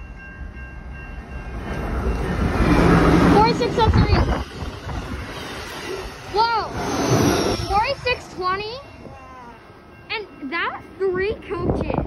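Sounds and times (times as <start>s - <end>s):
rail noise: 0.0s - 12.0s
train rumble: 0.0s - 12.0s.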